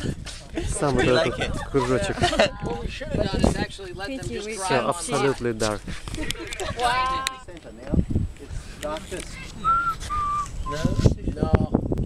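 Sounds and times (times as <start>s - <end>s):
person whistling notes: 9.6s - 11.1s.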